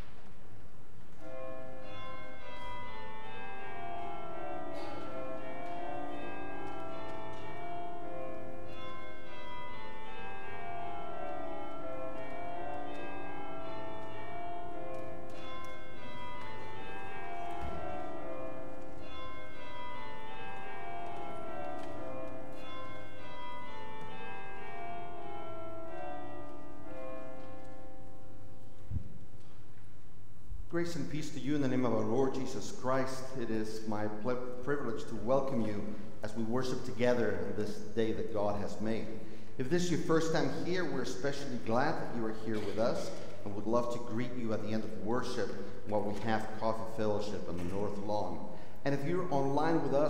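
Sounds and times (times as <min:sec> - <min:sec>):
church carillon bells pealing: 0:01.2 - 0:28.9, 0:30.8 - 0:50.0.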